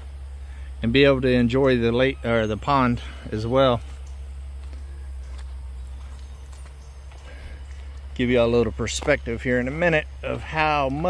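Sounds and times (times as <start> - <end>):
footsteps on dirt road: 0.0 - 11.0
steady low rumble: 0.0 - 11.0.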